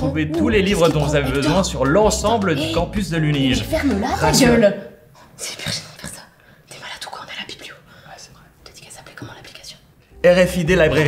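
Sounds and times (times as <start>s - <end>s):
person whispering: 5.3s - 9.9s.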